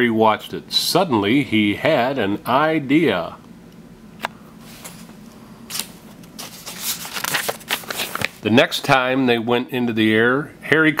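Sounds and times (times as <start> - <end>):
paper rustling and crinkling: 4.7 - 8.5
page turning tick: 5.7 - 8.4.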